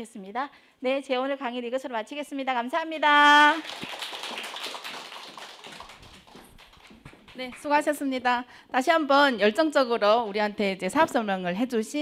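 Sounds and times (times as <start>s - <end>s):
audience applauding: 3.6s - 7.7s.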